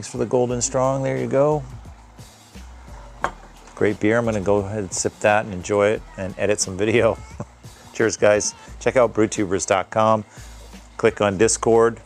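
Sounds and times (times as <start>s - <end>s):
bottle clinking on glass table: 3.2s - 3.5s.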